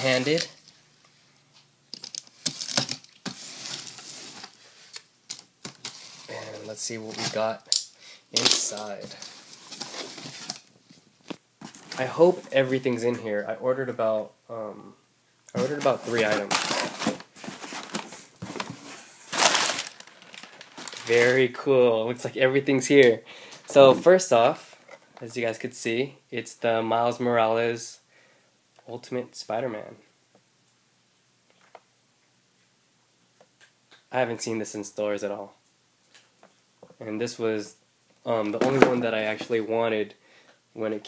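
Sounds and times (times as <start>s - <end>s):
packing paper rustling: 8.4s - 10.7s, 15.6s - 21.6s.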